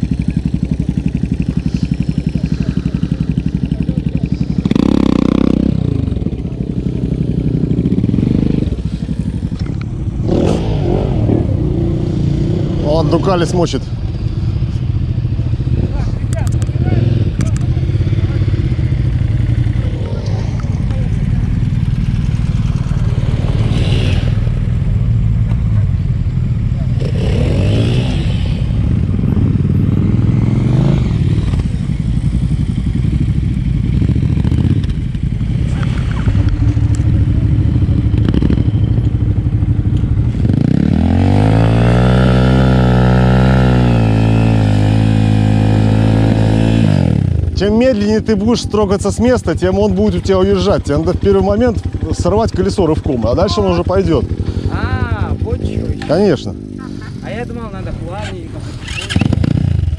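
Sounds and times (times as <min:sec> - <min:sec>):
dirt bike engine revving and idling: 0:00.0 - 0:59.9
motorcycle engines revving: 0:00.0 - 0:59.9.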